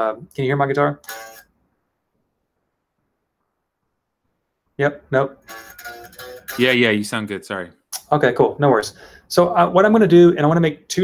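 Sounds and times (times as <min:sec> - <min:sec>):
electric guitar note: 0:05.4 - 0:06.9.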